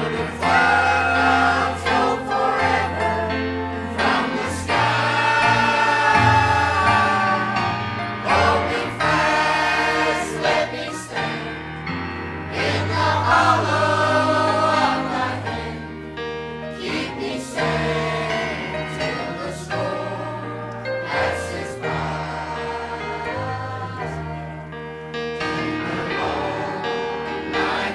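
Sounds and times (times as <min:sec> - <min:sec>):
choir singing a hymn: 0:00.0 - 0:27.9.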